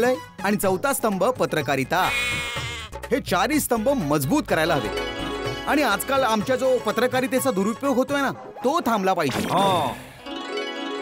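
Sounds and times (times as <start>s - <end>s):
comic bleat sound effect: 2.0s - 2.9s.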